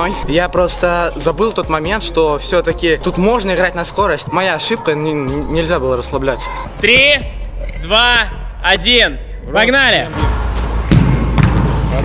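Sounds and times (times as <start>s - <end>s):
football being kicked: 10.9s - 11.8s.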